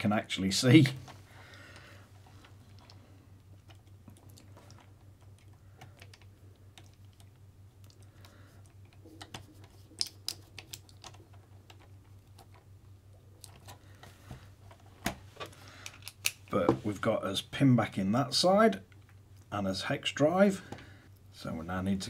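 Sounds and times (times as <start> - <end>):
faint low hum: 0.0 - 22.0.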